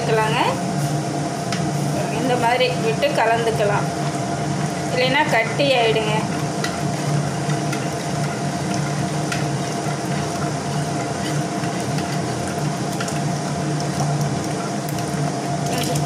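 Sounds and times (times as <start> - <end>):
ladle stirring in a clay pot: 1.5 - 16.0.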